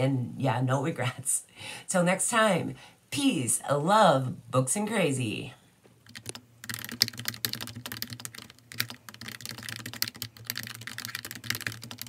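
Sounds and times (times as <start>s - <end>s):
fast keyboard typing: 6.0s - 12.0s.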